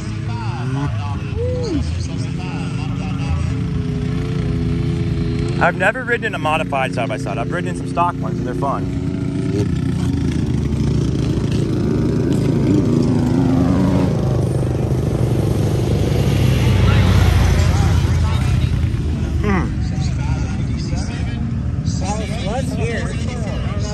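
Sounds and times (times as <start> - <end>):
vehicle engine passing: 0.0 - 23.9
background voices: 16.7 - 23.9.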